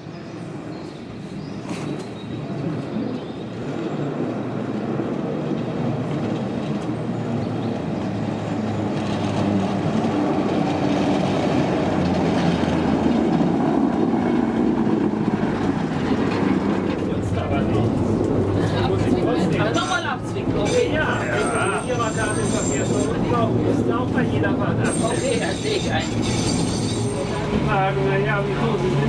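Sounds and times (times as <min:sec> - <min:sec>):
tram wheels rumbling on rails: 0:00.0 - 0:29.0.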